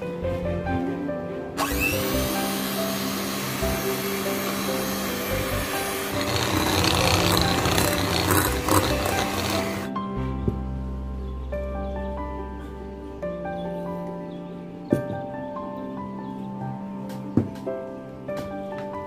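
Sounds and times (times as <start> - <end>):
background music: 0.0 - 19.0
electric hand mixer running: 1.6 - 9.9.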